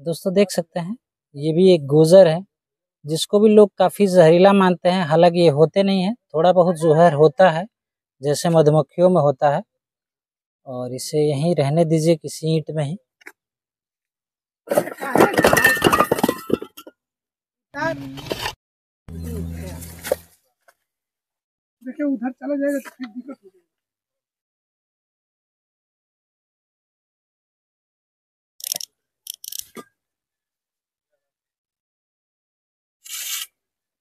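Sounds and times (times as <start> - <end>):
bricks clinking and clattering: 14.7 - 17.0.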